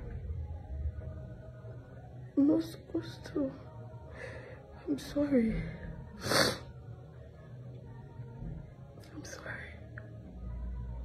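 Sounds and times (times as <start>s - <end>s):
low steady hum: 0.0s - 11.0s
woman breathing softly: 4.1s - 4.8s.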